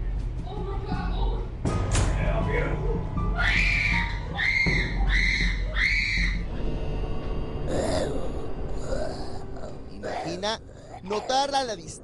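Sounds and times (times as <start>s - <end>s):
woman screaming: 3.4s - 6.4s.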